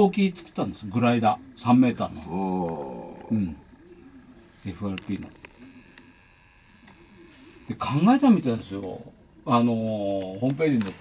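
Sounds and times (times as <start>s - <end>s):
man speaking: 0.0s - 3.7s, 4.6s - 5.4s.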